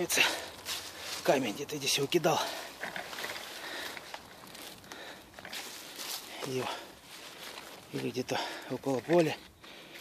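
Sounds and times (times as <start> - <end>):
plants brushing: 0.0 - 9.5
footsteps through grass: 0.0 - 10.0.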